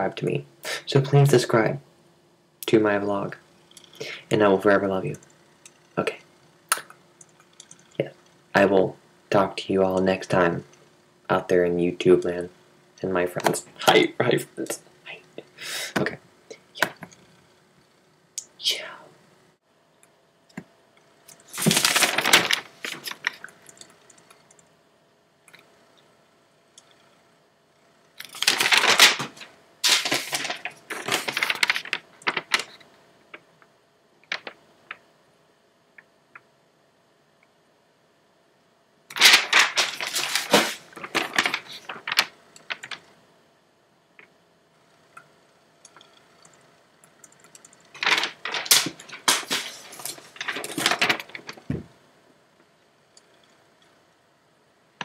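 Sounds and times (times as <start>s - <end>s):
person whispering: 15.0s - 15.4s, 18.4s - 19.2s
paper rustling and clicks: 21.3s - 23.9s, 28.2s - 33.4s, 34.2s - 35.0s, 39.1s - 43.1s, 47.5s - 51.8s.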